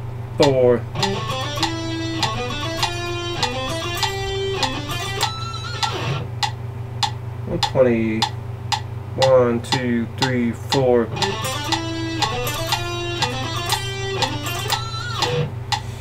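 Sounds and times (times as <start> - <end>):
electric guitar picked run: 0.4 - 6.4, 11.1 - 16.0
metronome clicking: 0.4 - 15.9
person counting: 7.5 - 8.3, 9.2 - 14.8.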